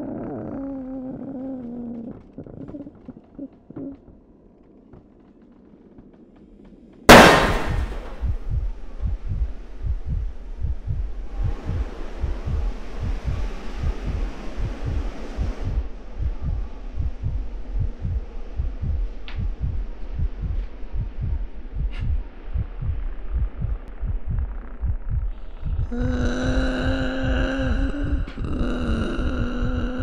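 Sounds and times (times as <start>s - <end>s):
low heartbeat-like pulse: 0.0s - 30.0s
loud jump-scare hit: 7.1s - 8.2s.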